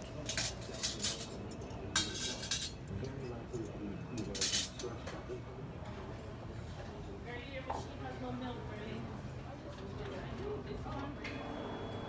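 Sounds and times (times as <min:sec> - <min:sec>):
cutlery clinking against dishes: 0:00.0 - 0:05.3
faint murmur of voices: 0:00.0 - 0:12.0.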